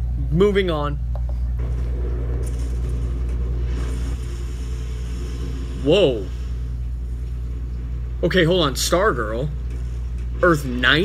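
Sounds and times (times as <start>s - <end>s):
deep rumble: 1.5s - 11.0s.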